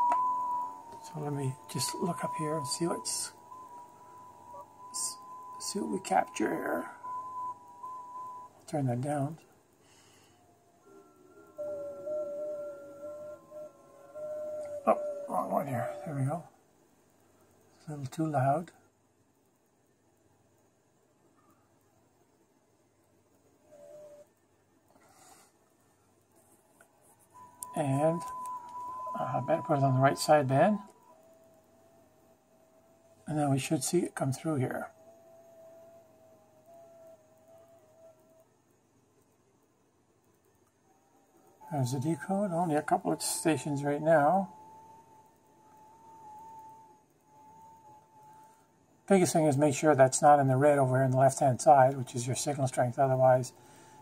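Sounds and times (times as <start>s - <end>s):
steady digital radio tones: 0.0s - 9.4s, 27.6s - 31.0s
faint radio hiss: 0.0s - 54.0s.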